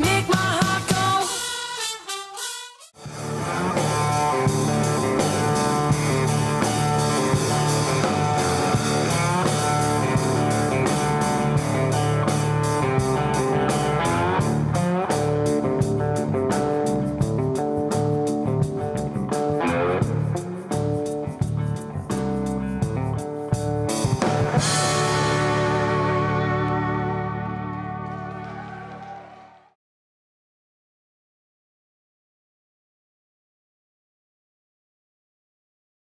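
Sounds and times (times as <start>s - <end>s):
bass: 0.0s - 1.4s, 3.0s - 29.8s
steady drum beat: 2.4s - 25.8s
electric guitar lead: 3.0s - 29.0s.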